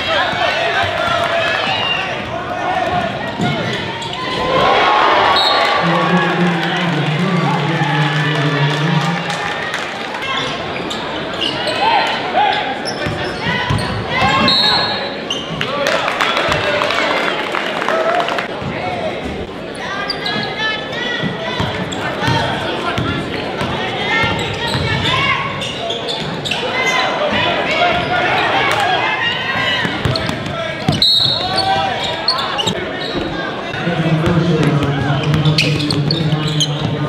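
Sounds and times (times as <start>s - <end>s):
crowd chatter: 0.0s - 37.0s.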